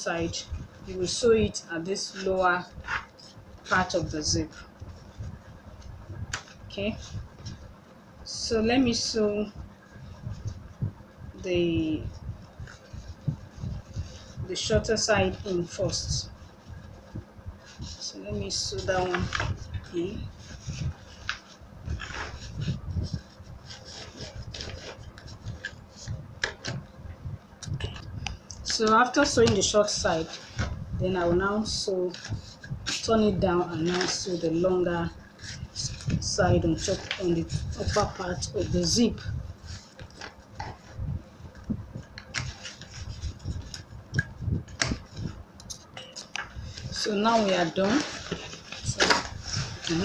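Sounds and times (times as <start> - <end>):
fabric rubbing and scraping: 8.9 - 26.9, 28.7 - 50.0.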